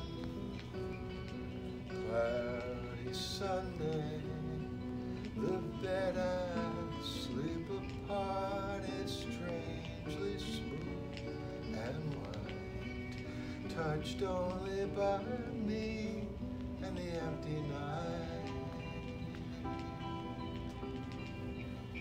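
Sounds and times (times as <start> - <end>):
piano and guitar music: 0.0 - 22.0.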